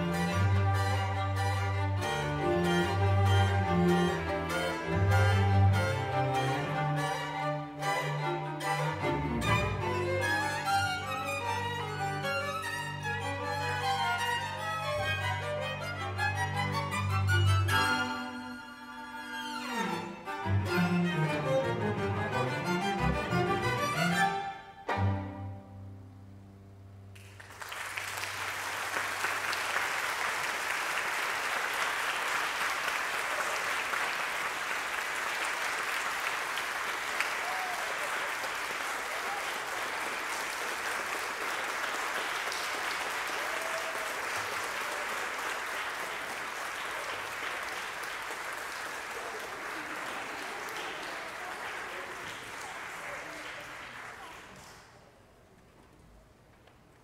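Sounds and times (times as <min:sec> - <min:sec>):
audience applauding: 0:27.1 - 0:55.2.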